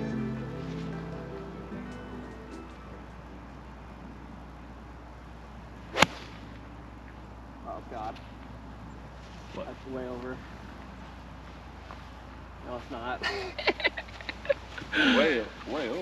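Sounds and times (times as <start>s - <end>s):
background music: 0.0s - 3.9s
golf club striking ball: 5.9s - 6.6s.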